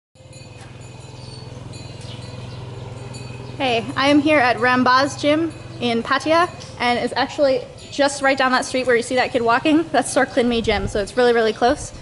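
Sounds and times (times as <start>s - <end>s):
woman speaking: 3.6s - 12.0s.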